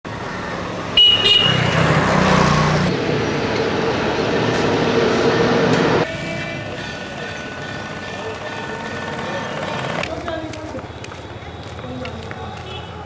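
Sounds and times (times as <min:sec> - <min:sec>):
road traffic noise: 0:00.0 - 0:13.0
vehicle engine passing: 0:00.4 - 0:06.8.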